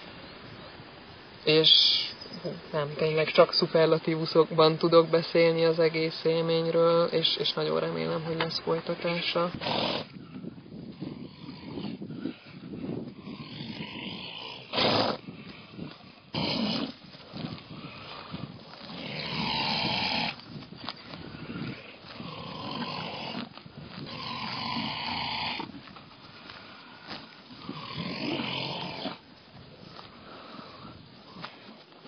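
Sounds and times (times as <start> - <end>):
horses chewing grass: 14.5 - 32.0.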